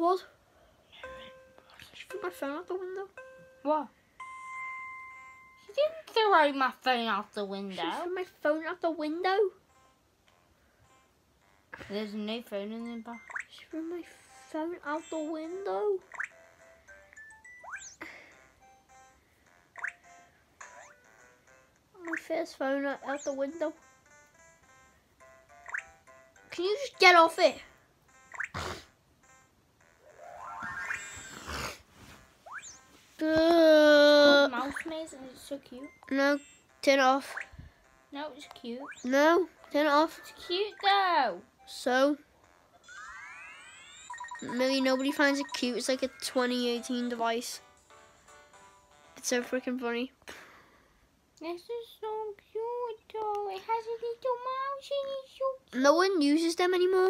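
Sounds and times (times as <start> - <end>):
electronic chime tone: 42.9 - 45.8.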